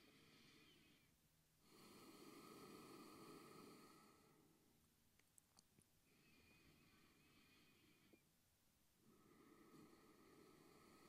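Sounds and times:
faint soft hiss: 0.0 - 11.0.

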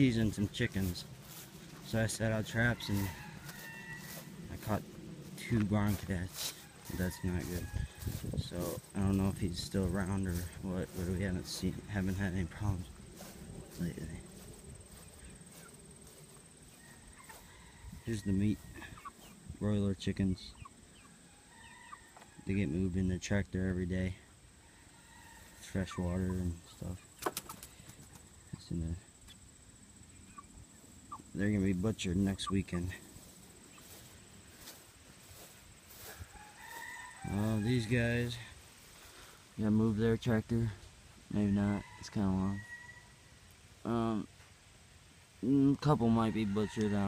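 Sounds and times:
footsteps swishing through grass: 0.1 - 19.3, 31.7 - 37.7.

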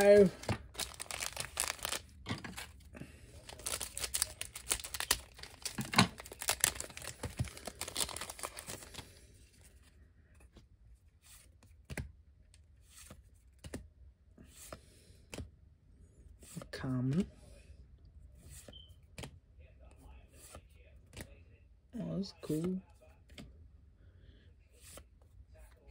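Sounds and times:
foil wrapper tearing and crinkling: 0.0 - 2.7, 3.4 - 9.1.

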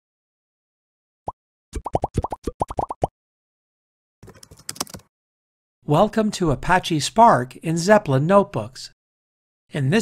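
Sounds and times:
rising bubble plops: 1.8 - 3.1.

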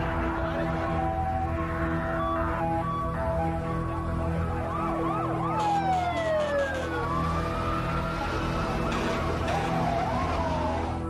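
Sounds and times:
emergency sirens wailing: 0.0 - 11.0.

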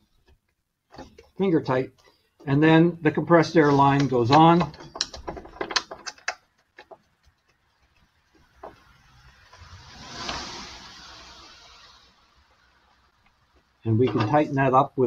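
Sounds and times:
compressed air rushing: 8.8 - 13.2.

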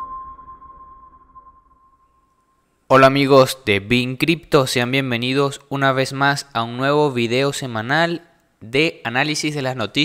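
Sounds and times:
high ping-like tone: 0.0 - 2.6
man talking: 2.9 - 10.0.

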